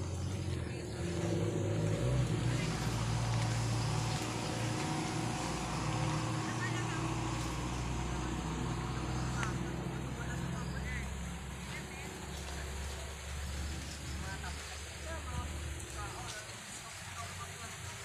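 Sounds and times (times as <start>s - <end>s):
low motor rumble: 0.0s - 16.4s
faint voices: 0.0s - 18.0s.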